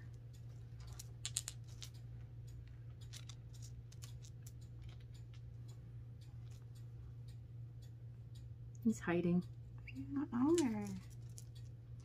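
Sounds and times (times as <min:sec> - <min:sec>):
steady low hum: 0:00.0 - 0:12.0
gemstones clicking together: 0:00.8 - 0:02.0, 0:03.0 - 0:05.4, 0:10.3 - 0:11.7.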